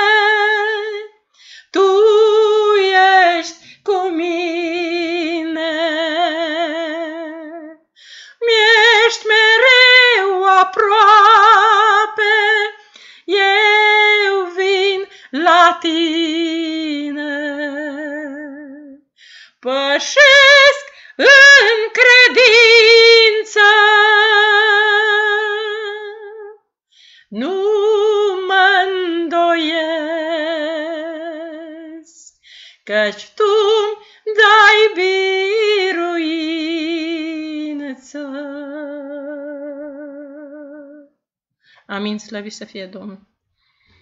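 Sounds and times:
woman singing unaccompanied: 0.0 - 19.0, 19.6 - 26.6, 27.3 - 41.2
singer breathing: 1.3 - 1.7, 7.9 - 8.4, 12.8 - 13.3, 19.1 - 19.6, 26.9 - 27.3, 32.4 - 32.8, 43.5 - 44.0.

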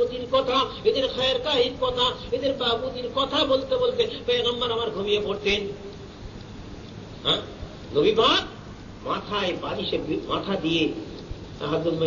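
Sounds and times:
man speaking: 0.0 - 5.9, 7.2 - 12.0
faint background hiss: 0.0 - 12.0.

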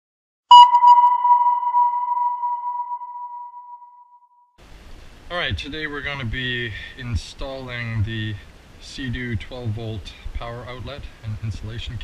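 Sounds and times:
sonar ping: 0.5 - 4.5.

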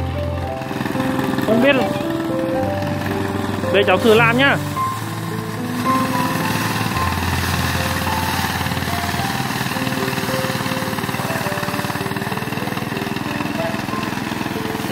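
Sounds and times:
small thresher engine running: 0.0 - 14.9.

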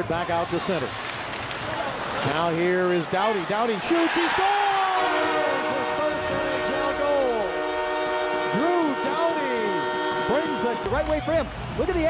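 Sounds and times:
crowd shouting and cheering: 3.0 - 7.5
arena goal horn: 4.9 - 11.0.

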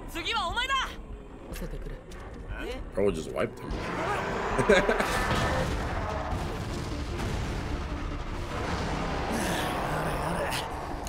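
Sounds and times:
background music: 0.0 - 11.0
rumbling impact blasts: 4.7 - 11.0.

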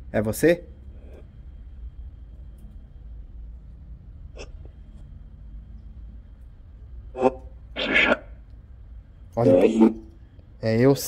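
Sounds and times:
short voice-like blip: 9.4 - 10.0.

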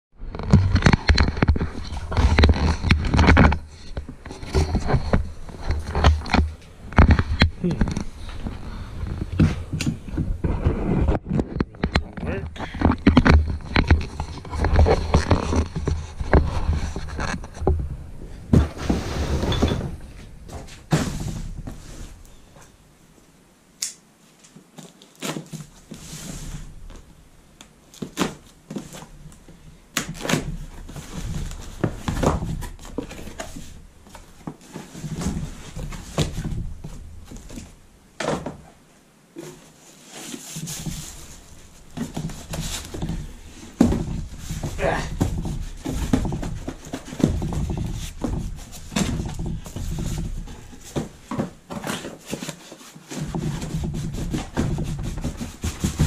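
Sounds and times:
rustling: 0.2 - 23.3, 24.2 - 56.0.

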